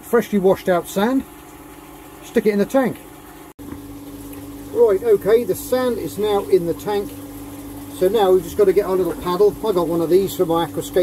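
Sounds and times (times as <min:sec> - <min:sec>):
aquarium pump humming: 0:00.0 - 0:11.0.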